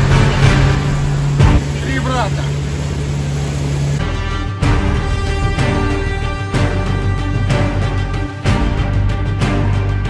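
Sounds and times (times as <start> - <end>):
rushing water: 0.0 - 6.7
background music: 0.0 - 10.0
outboard engine drone: 0.0 - 10.0.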